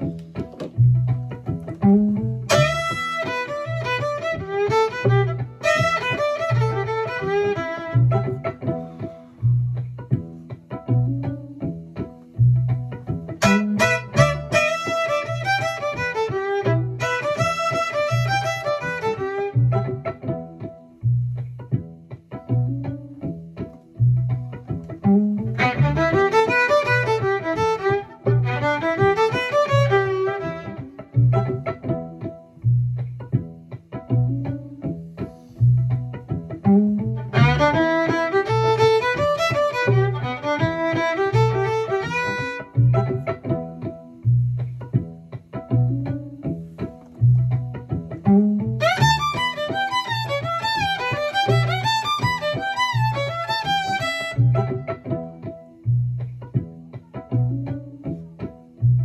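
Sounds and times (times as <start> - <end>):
backing track with bass pulse: 0.0 - 59.0
bluesy fiddle phrases: 0.0 - 59.0.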